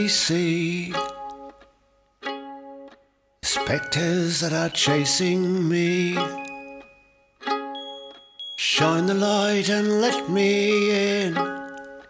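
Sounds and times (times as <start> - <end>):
plucked string chords: 0.0 - 12.0.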